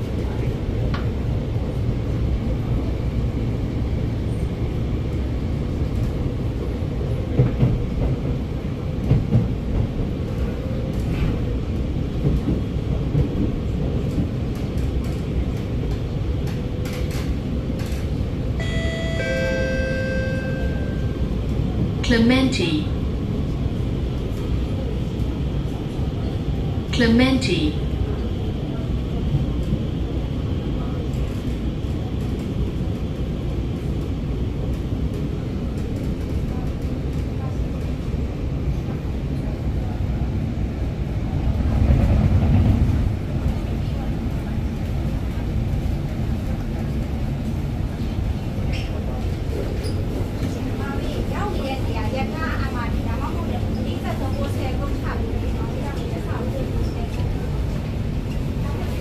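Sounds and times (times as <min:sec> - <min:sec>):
metro car running gear rumble: 0:00.0 - 0:59.0.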